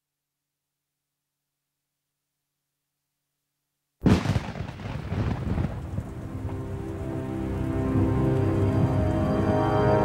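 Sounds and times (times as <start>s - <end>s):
thunder rumble: 4.0s - 10.0s
rain hiss: 4.1s - 10.0s
dark eerie film music: 5.7s - 10.0s.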